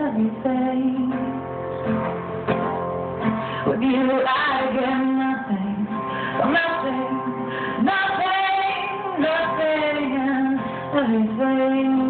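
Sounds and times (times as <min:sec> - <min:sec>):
woman singing: 0:00.0 - 0:01.5, 0:03.6 - 0:12.0
acoustic guitar: 0:00.0 - 0:12.0.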